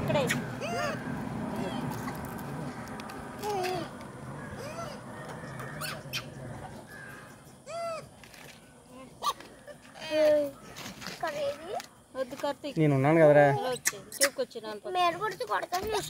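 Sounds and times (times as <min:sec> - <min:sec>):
high-pitched arching calls: 0:04.3 - 0:11.7.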